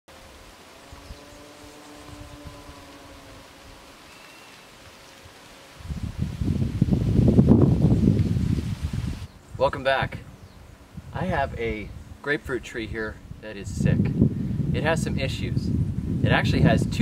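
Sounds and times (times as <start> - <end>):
wind buffeting microphone: 0.8 - 4.0, 5.8 - 17.0.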